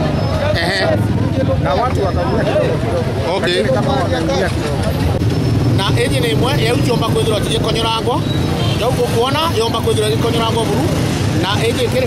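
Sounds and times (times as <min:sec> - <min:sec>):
vehicle engine rumbling: 0:00.0 - 0:12.0
voices talking: 0:00.0 - 0:12.0.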